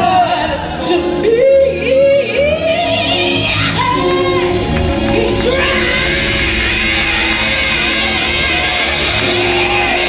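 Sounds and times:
woman singing into microphone: 0:00.0 - 0:06.7
gospel band playing: 0:00.0 - 0:10.0.

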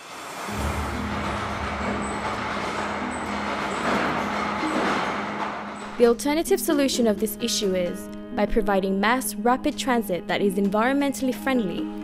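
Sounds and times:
train rolling on rails: 0:00.0 - 0:06.8
low hum: 0:00.4 - 0:06.2.

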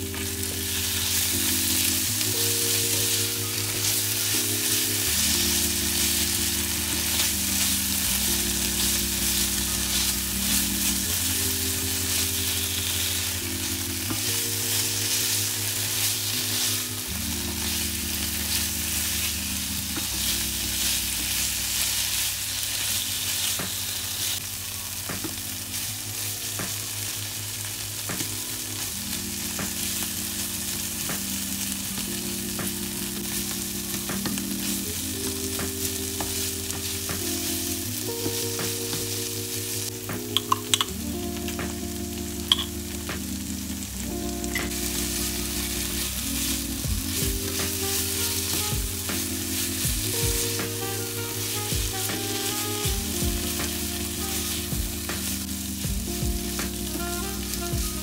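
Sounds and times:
food sizzling in a pan: 0:00.0 - 0:58.0
soft background music: 0:00.0 - 0:58.0
sharp utensil clicks: 0:40.3 - 0:40.9, 0:42.5 - 0:42.7.

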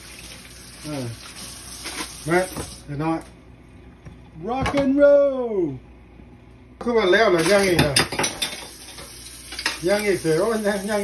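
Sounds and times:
running tap water: 0:00.0 - 0:02.9, 0:08.4 - 0:11.0
dishes clinking in a metal sink: 0:07.3 - 0:10.2.

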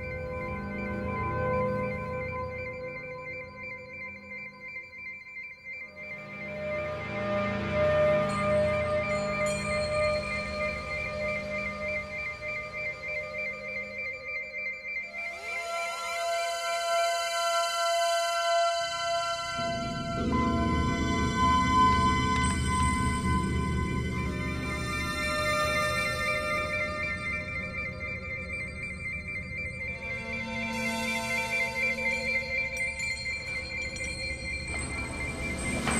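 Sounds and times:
electronic drone: 0:00.0 - 0:35.9
pulsing high synth note: 0:18.4 - 0:35.9.

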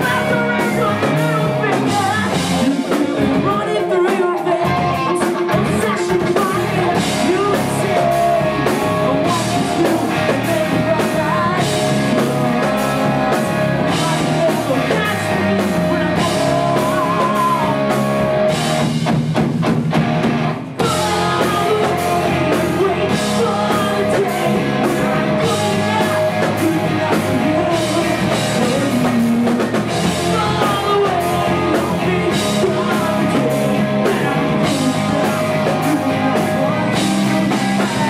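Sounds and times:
man singing into microphone: 0:00.0 - 0:18.0, 0:20.8 - 0:38.0
electric guitar: 0:00.0 - 0:38.0
rock band playing live: 0:00.0 - 0:38.0.

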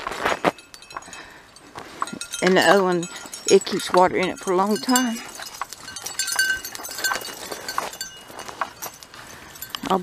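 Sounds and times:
footsteps on gravelly dirt: 0:00.0 - 0:10.0
light metallic clinking: 0:00.4 - 0:10.0.

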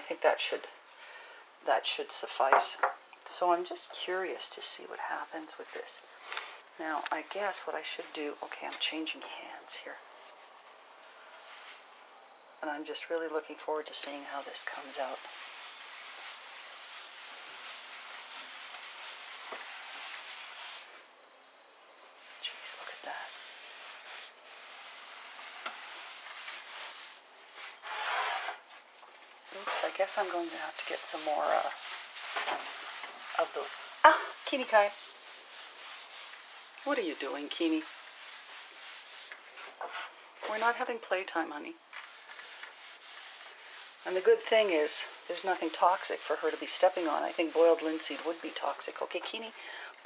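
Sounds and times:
cloth rubbing wood: 0:13.9 - 0:21.1, 0:22.2 - 0:28.8, 0:29.4 - 0:41.3, 0:41.9 - 0:49.4.

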